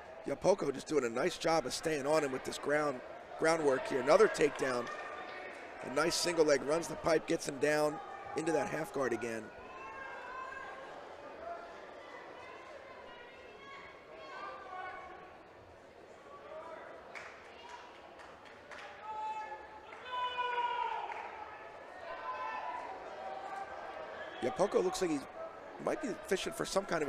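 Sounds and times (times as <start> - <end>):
distant voices shouting in hall: 18.9 - 26.7.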